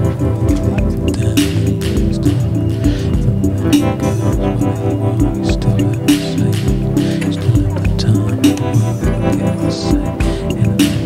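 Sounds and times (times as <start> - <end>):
recorded indie song playing: 0.0 - 11.0.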